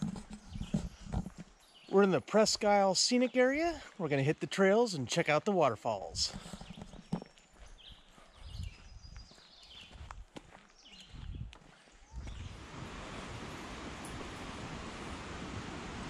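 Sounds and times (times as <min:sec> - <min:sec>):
footsteps on dirt trail: 0:00.0 - 0:04.8, 0:06.0 - 0:13.3.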